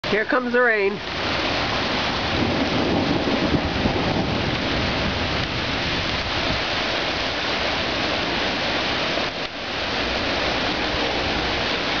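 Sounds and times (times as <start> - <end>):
heavy rain pouring: 0.0 - 12.0.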